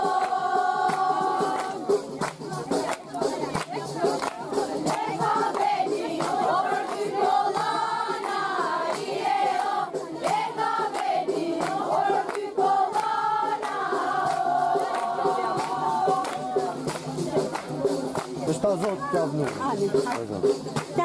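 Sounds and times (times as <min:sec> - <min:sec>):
group singing in chorus: 0:00.0 - 0:18.4
hand-clapping: 0:00.0 - 0:21.0.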